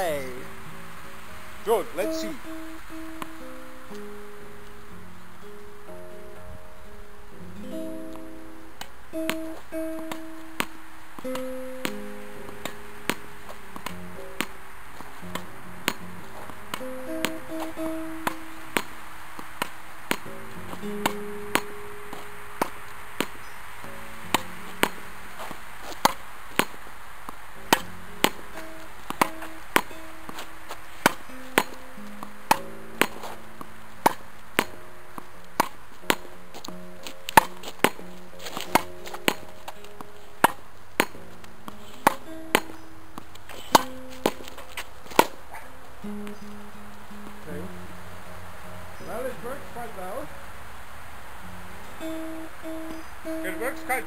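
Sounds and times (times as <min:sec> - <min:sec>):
soft background music: 0:00.0 - 0:19.3, 0:27.5 - 0:54.0
tennis ball struck by racket: 0:01.8 - 0:04.1, 0:07.7 - 0:47.8.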